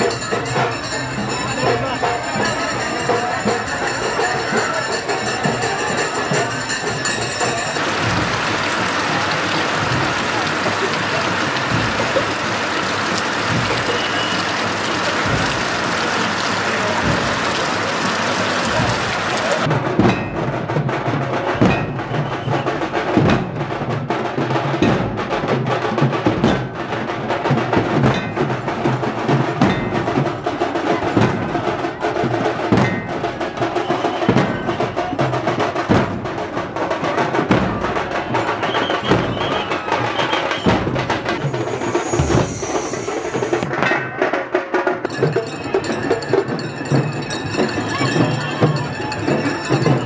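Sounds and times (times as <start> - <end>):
procession drumming: 0.0 - 17.8, 20.8 - 50.0
dhol drums beaten rapidly: 0.0 - 50.0.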